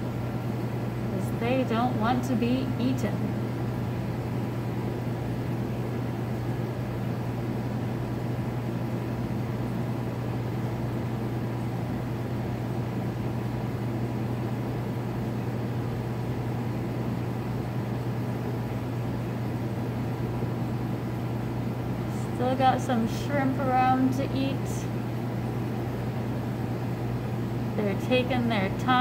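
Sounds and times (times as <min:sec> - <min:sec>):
low machine hum: 0:00.0 - 0:29.0.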